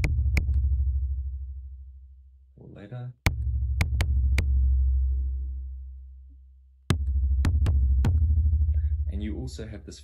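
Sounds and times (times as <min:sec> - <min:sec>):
low synthesized drum: 0:00.0 - 0:01.9, 0:03.2 - 0:06.2, 0:06.9 - 0:09.7.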